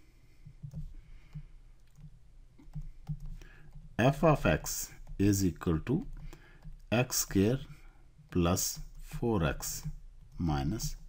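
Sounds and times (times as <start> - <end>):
low steady hum: 0.0 - 11.0
stylus tapping on tablet: 0.4 - 4.0.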